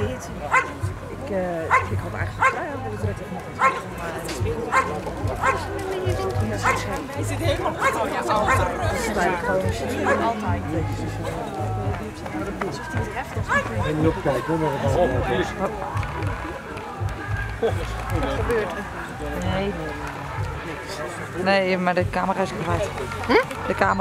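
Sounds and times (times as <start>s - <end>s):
dog barking: 0.5s - 0.8s, 1.7s - 2.6s, 3.6s - 3.9s, 4.7s - 5.7s, 6.6s - 6.8s, 7.8s - 8.8s, 10.0s - 10.4s, 13.5s - 13.8s.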